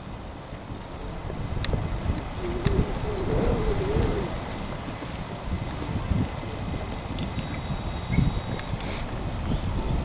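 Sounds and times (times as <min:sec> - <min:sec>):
dove cooing: 0:02.2 - 0:05.0.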